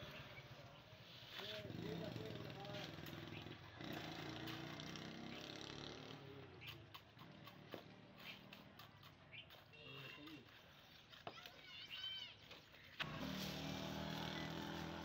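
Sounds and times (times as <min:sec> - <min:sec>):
trowel scraping mortar: 0:04.3 - 0:11.6, 0:12.5 - 0:15.0.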